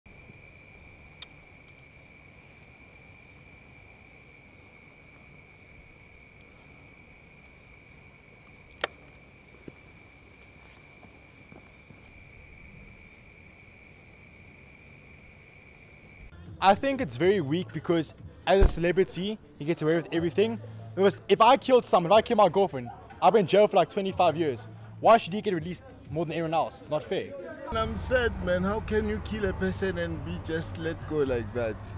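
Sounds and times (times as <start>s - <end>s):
background hiss: 0.1s - 16.3s.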